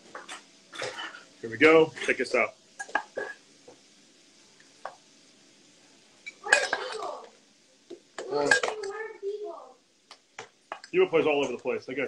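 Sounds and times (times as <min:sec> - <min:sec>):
dishes and cutlery clinking: 0:00.1 - 0:01.2, 0:02.8 - 0:03.4, 0:06.2 - 0:07.0, 0:08.2 - 0:08.9
man speaking: 0:10.9 - 0:12.0.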